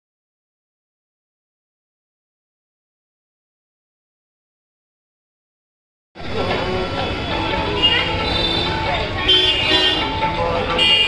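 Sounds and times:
many voices: 6.2 - 11.0
music: 6.2 - 11.0
traffic: 6.2 - 11.0
vehicle horn: 7.7 - 11.0.

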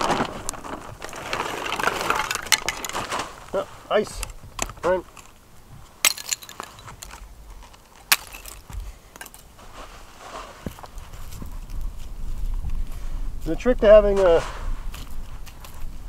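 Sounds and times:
ice cracking: 0.0 - 5.4, 6.0 - 9.4
ice crunching and rustling: 0.0 - 16.0.

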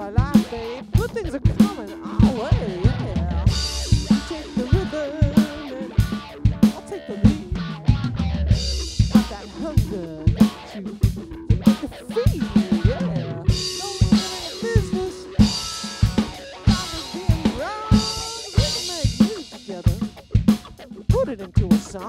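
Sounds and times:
drum kit beat: 0.0 - 22.0
electric guitar lead lines: 0.0 - 22.0.

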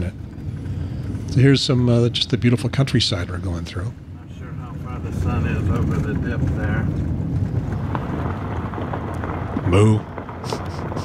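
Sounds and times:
engine and tyres on gravel: 0.0 - 11.0.

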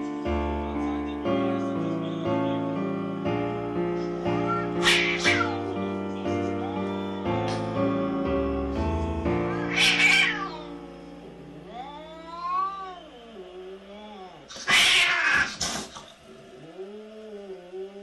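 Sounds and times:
background music: 0.0 - 14.6
cat hissing: 4.5 - 5.6, 9.5 - 10.7, 11.7 - 13.0, 13.9 - 18.0
cat yowling: 4.5 - 5.6, 9.5 - 10.7, 11.7 - 15.8.

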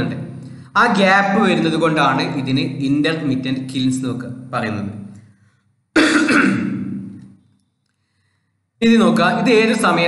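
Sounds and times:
man clearing his throat: 6.0 - 7.2.

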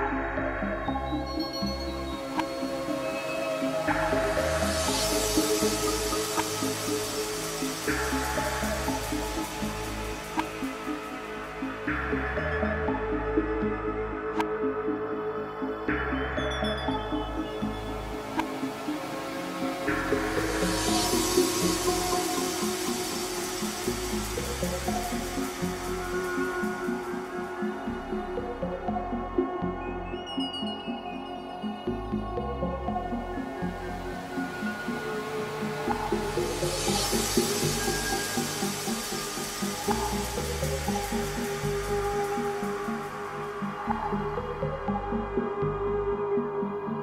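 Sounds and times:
hissy noise wash: 2.4 - 11.8, 18.2 - 28.0, 34.2 - 44.1.

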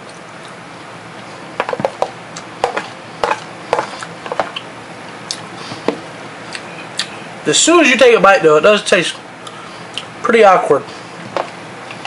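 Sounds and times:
person chewing crunchy food: 1.2 - 4.7.

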